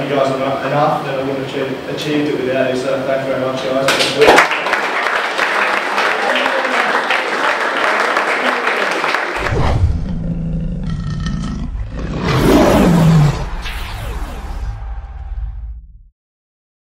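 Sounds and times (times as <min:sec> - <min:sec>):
people applauding: 0:03.9 - 0:09.5
lion roar: 0:09.4 - 0:13.6
low rumbling sound effect: 0:09.4 - 0:16.1.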